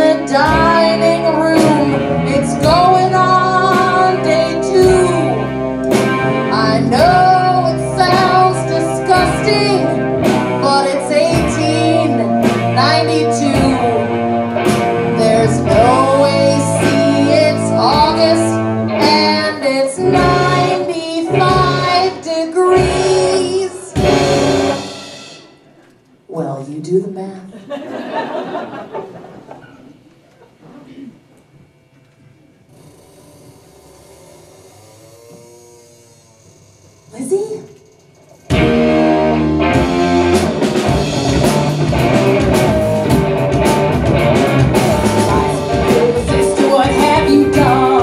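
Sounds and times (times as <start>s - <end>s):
electric guitar: 0.0s - 25.3s, 38.4s - 48.0s
bass guitar: 0.0s - 25.4s, 38.4s - 48.0s
keyboard: 0.0s - 25.6s
rock band chord: 0.0s - 25.6s, 38.5s - 48.0s
drum kit steady beat: 1.6s - 18.4s, 20.1s - 25.6s, 38.5s - 48.0s
drum hit: 39.7s - 48.0s.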